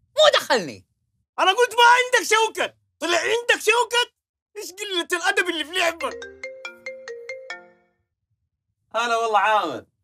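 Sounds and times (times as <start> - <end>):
mobile phone ringtone melody: 5.9 - 8.1.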